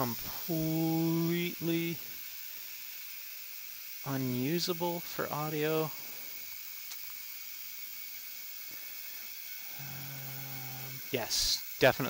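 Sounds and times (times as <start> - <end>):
low humming voice: 0.0 - 2.0, 9.6 - 11.6
ultrasonic cleaner hissing: 0.0 - 12.0.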